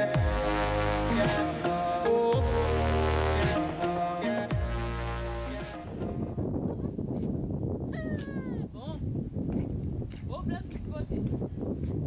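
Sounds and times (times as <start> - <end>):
wind rumble on microphone: 5.6 - 12.0.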